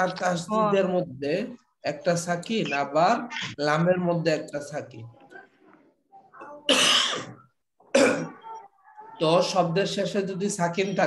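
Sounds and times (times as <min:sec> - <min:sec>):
man coughing: 0:06.7 - 0:08.4.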